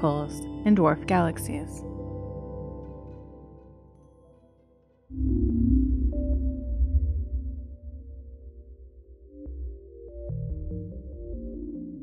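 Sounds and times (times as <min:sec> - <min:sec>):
ambient synthesizer drone: 0:05.1 - 0:12.0.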